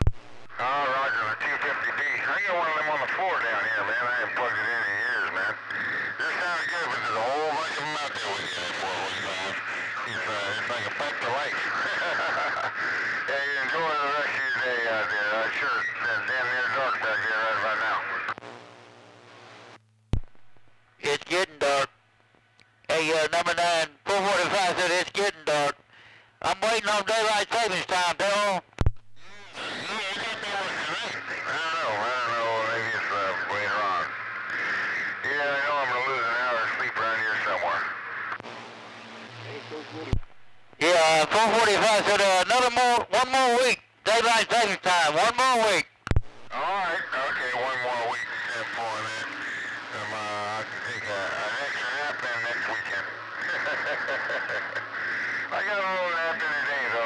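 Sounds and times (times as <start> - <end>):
radio static: 0.0 - 21.9, 22.9 - 57.0
voices over radio: 0.4 - 19.7, 20.5 - 22.0, 22.9 - 57.0.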